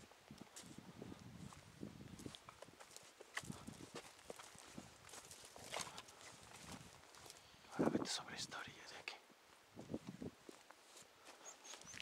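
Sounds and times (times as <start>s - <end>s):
footsteps crunching over dry brush: 0.0s - 8.0s, 9.4s - 12.0s.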